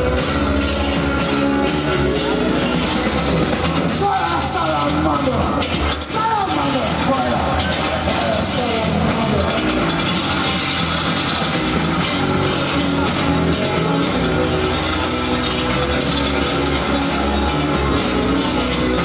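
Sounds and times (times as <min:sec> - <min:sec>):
drums: 0:00.0 - 0:19.0
electric bass guitar: 0:00.0 - 0:19.0
live band playing: 0:00.0 - 0:19.0.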